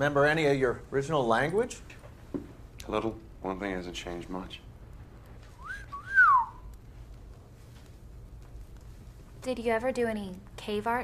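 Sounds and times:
man's wolf whistle: 5.6s - 6.7s.

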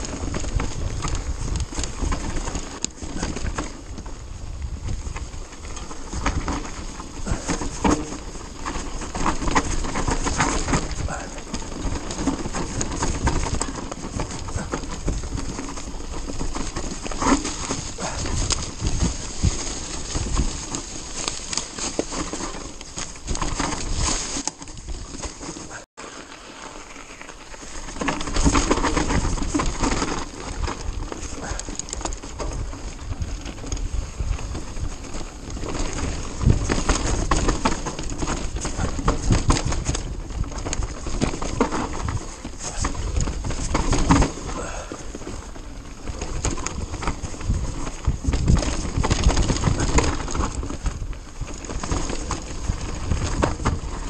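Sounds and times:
bike knocking and rattling: 0.0s - 54.0s
bike tyres rumbling over dirt: 0.0s - 54.0s.

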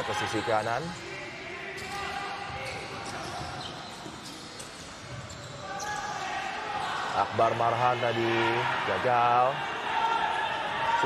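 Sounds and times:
crowd background noise: 0.0s - 11.0s.

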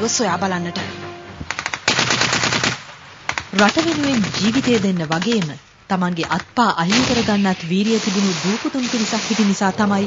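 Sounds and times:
automatic gunfire: 1.7s - 2.8s.

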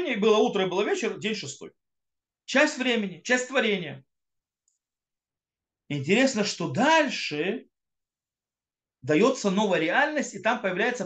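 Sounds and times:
man speaking: 0.0s - 1.7s, 2.5s - 4.1s, 5.9s - 7.7s, 9.0s - 11.0s.

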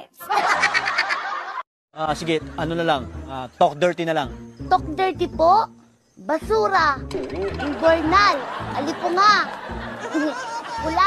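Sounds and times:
rapid pulsed laughter: 7.2s - 11.0s.

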